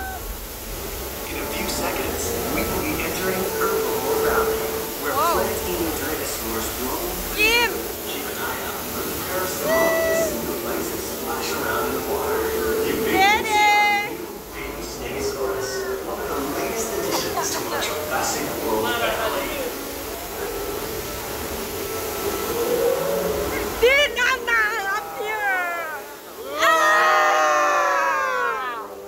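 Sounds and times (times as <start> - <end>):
faint hum: 0.0 - 24.4
ride boat rumbling: 0.0 - 26.6
murmur of voices: 0.0 - 29.0.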